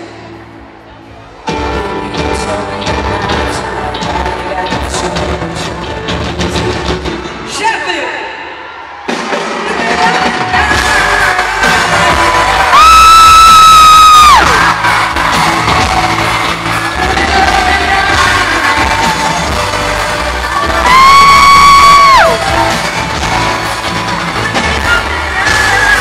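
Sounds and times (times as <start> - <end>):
live pop-rock band: 0.0 - 7.6, 8.5 - 26.0.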